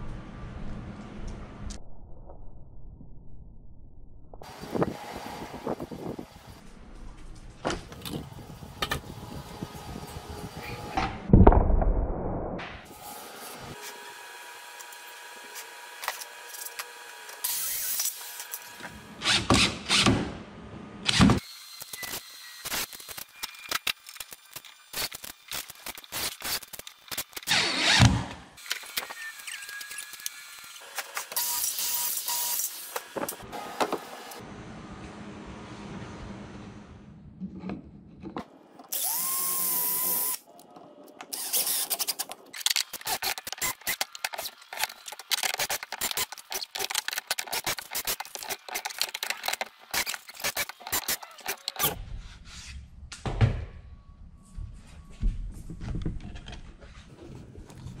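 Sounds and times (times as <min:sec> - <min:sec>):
cordless drill driving screws: 0:38.9 - 0:40.4, 0:41.3 - 0:52.0
screws and parts clattering: 0:41.3 - 0:52.0.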